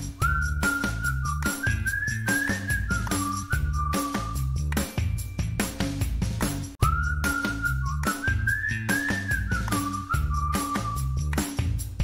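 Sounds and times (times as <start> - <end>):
whistled tune: 0.0 - 5.7, 6.8 - 11.7
upbeat music with drumbeat: 0.0 - 12.0.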